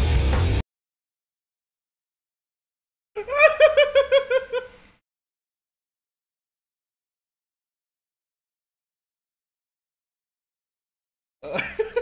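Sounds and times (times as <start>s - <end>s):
man laughing high-pitched: 3.2s - 4.9s, 11.4s - 12.0s.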